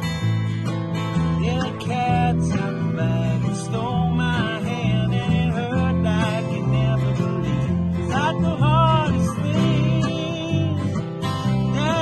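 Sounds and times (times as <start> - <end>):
electric bass: 0.0 - 12.0
strummed acoustic guitars: 0.0 - 12.0
man singing: 1.2 - 12.0.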